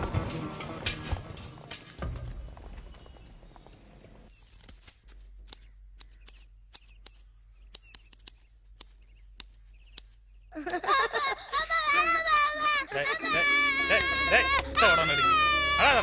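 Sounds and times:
sharp irregular clicks: 0:05.4 - 0:11.4
film score music: 0:10.6 - 0:16.0.

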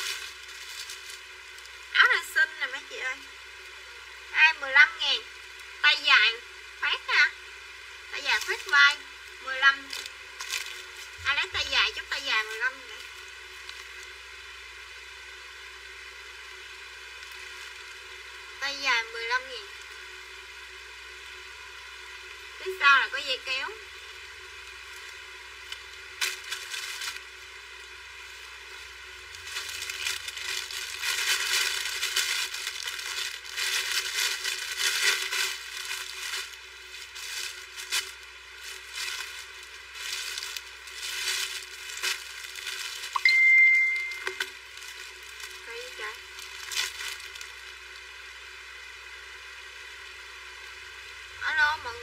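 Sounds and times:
plastic bags and clothing rustling: 0:00.0 - 0:02.3, 0:08.2 - 0:09.1, 0:09.7 - 0:14.2, 0:24.8 - 0:48.1
short high beep: 0:43.2 - 0:44.4.

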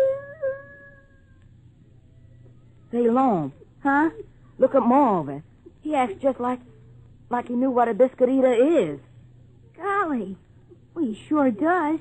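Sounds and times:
puppy whining: 0:00.0 - 0:01.5
low steady recording hum: 0:00.0 - 0:12.0.

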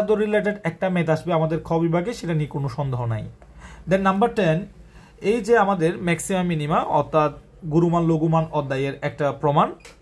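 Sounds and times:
man talking: 0:00.0 - 0:09.8.

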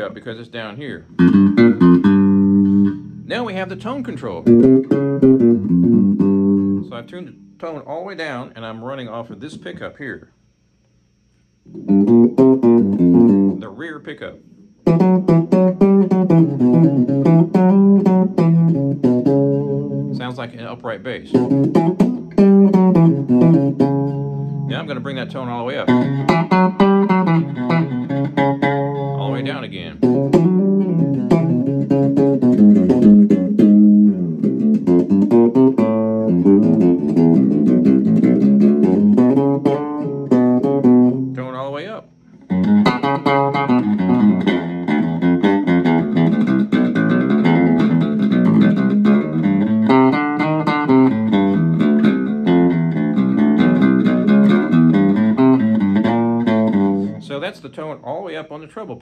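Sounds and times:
electric bass line: 0:00.0 - 0:10.2, 0:11.5 - 0:59.0.

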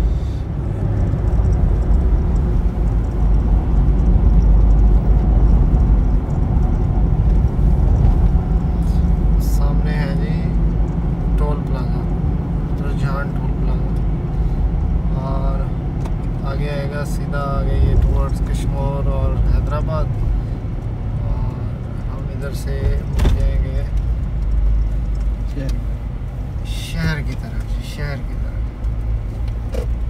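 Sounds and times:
car road and engine rumble: 0:00.0 - 0:30.0.

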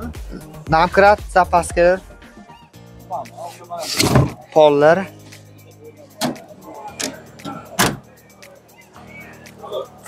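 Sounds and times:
car trunk lid thumping shut: 0:07.4 - 0:08.0.

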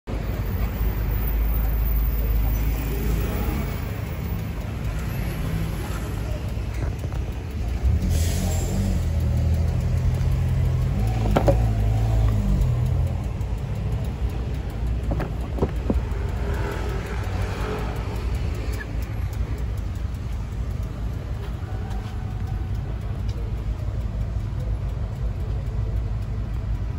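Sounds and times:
motorcycle engine idling: 0:00.2 - 0:26.9.

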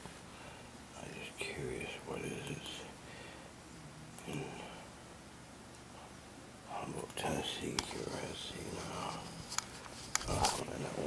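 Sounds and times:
quiet whispered speech: 0:01.0 - 0:03.0, 0:03.7 - 0:04.9, 0:05.9 - 0:09.6, 0:10.2 - 0:11.0.

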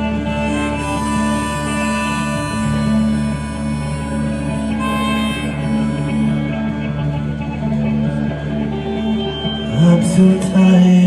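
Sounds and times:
bass guitar: 0:00.0 - 0:11.0
electric guitar: 0:00.0 - 0:11.0.

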